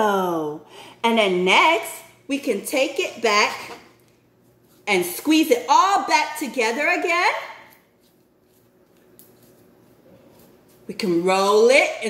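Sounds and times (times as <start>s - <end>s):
modelling dough being squeezed: 7.6s - 11.0s.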